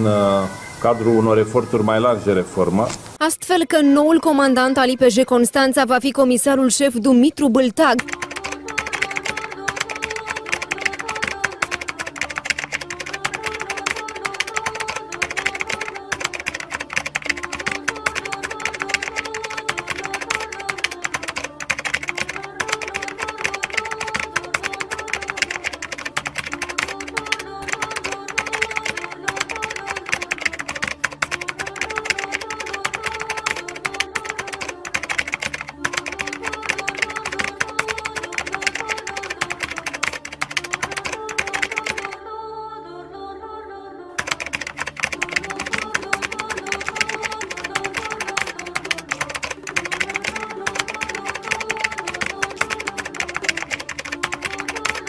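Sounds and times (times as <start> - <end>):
background music: 3.4 - 55.0
keyboard typing clicks: 8.0 - 42.2, 44.2 - 55.0.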